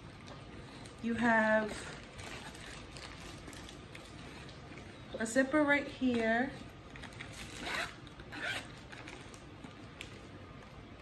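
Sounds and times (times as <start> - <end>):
bag handling noise: 0.2 - 4.9, 6.6 - 10.6
zipper being pulled: 7.3 - 9.1.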